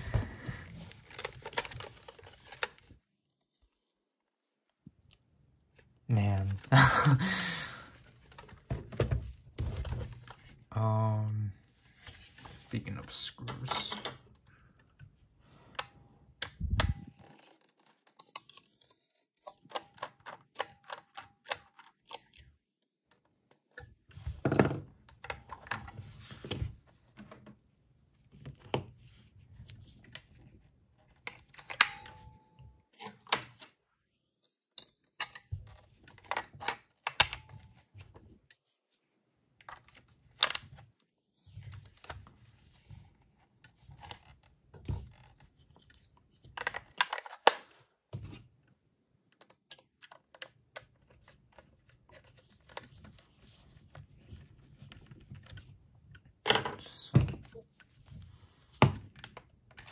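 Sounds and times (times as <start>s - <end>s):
plastic parts clicking and knocking: 0.9s - 2.9s, 15.7s - 27.6s, 34.7s - 38.2s, 43.6s - 47.7s, 49.3s - 53.2s, 54.8s - 59.9s.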